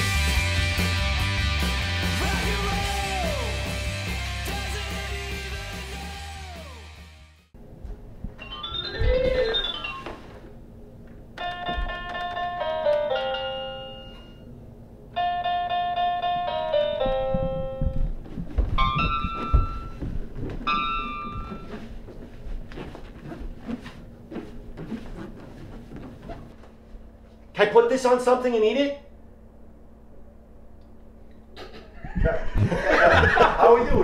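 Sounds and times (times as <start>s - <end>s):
toy keytar tones: 8.4s - 10.2s
irregular thumps and knocks: 17.0s - 21.9s.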